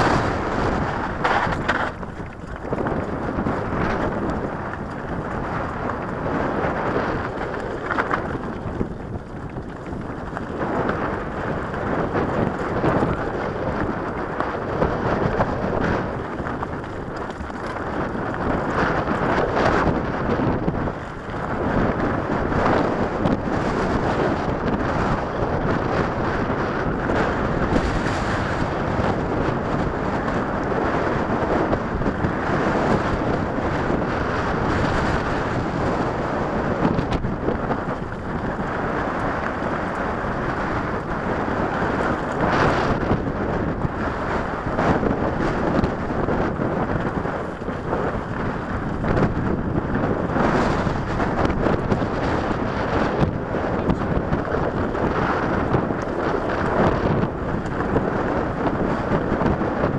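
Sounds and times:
bike bumps and jolts: 0.0s - 59.9s
bike tyres crunching on rocky trail: 0.0s - 59.9s
wind buffeting microphone: 0.0s - 59.9s.

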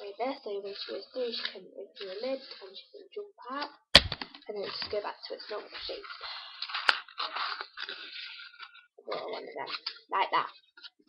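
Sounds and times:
paper crinkling: 4.6s - 11.0s.

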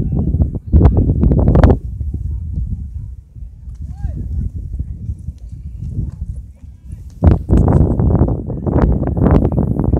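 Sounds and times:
wind buffeting microphone: 0.0s - 9.9s.

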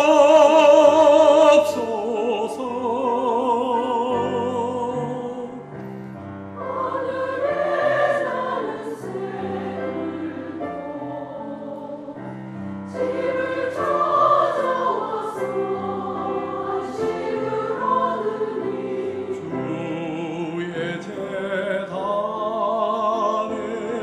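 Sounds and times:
choir singing: 0.0s - 24.0s
piano accompaniment: 0.0s - 24.0s.

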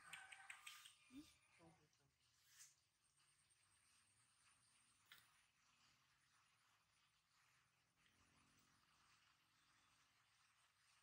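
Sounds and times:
quick clicks: 0.0s - 1.1s.

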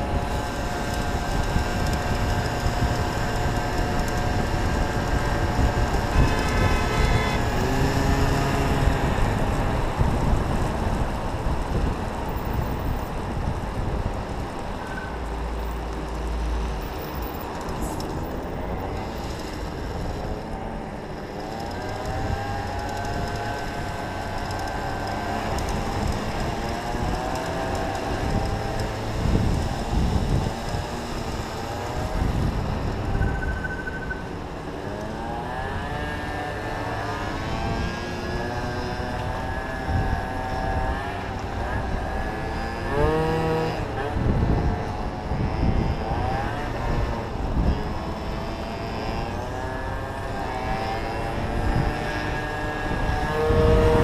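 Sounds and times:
small motorcycle engine revving: 0.0s - 11.1s, 17.5s - 54.0s
wind buffeting microphone: 0.0s - 15.9s, 21.8s - 34.8s, 35.5s - 54.0s.

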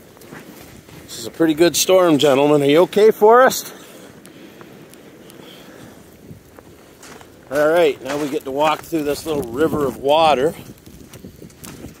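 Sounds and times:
footsteps in snow: 0.0s - 2.7s, 4.0s - 12.0s
storm wind on microphone: 4.8s - 12.0s.

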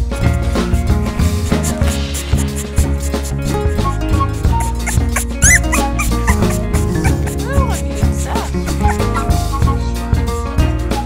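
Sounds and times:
music with steady drum beat: 0.1s - 10.0s
puppy whimpering: 1.5s - 9.7s.

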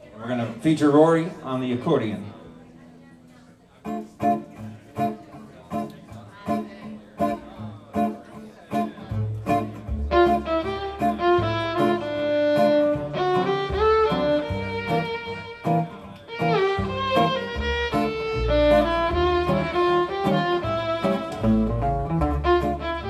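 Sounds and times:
acoustic guitar strumming: 3.8s - 23.0s
fiddle melody: 3.9s - 23.0s
upright bass: 7.2s - 23.0s.

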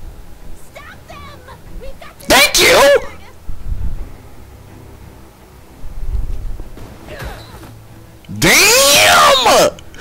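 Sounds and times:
faint background show audio: 0.4s - 6.5s
man yelling: 2.3s - 3.2s, 8.3s - 9.8s.

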